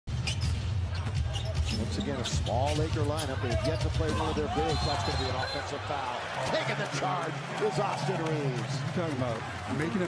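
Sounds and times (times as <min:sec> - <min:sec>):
arena crowd hum: 0:00.7 - 0:10.0.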